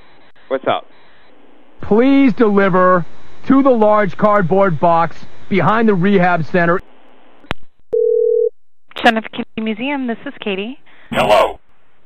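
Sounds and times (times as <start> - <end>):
telephone ringing tone: 8.0 - 8.5.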